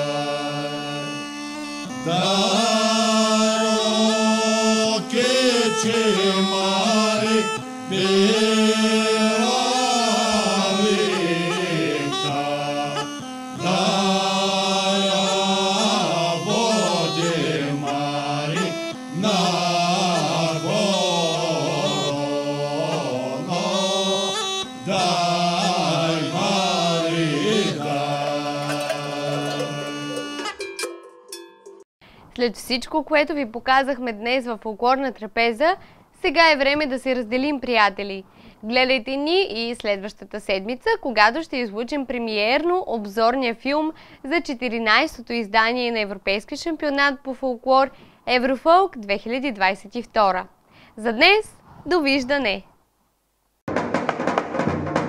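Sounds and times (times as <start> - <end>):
men singing unaccompanied: 0.0 - 1.3, 1.9 - 30.4.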